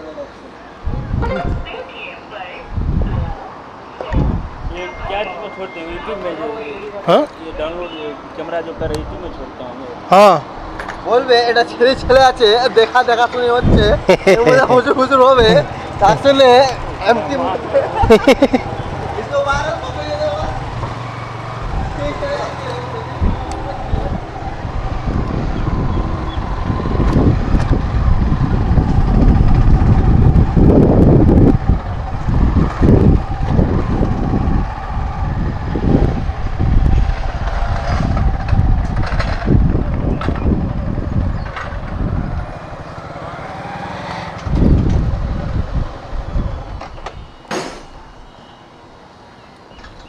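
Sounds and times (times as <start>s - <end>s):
road noise: 0.0s - 50.0s
wind buffeting microphone: 0.8s - 1.8s, 2.6s - 5.1s, 11.8s - 48.3s
motorcycle engine: 16.7s - 46.8s.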